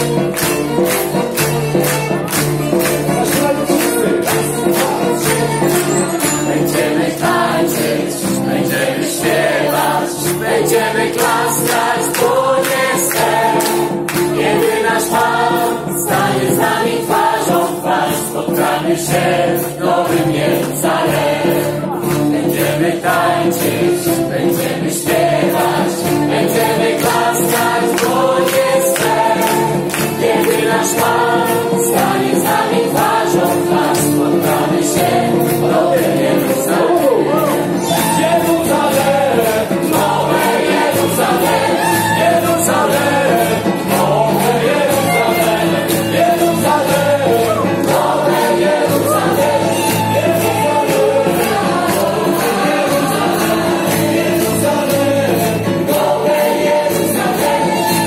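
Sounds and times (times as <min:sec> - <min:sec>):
crowd singing along: 0:00.0 - 0:58.0
live band playing worship song: 0:00.0 - 0:58.0
choir of voices singing: 0:02.6 - 0:58.0.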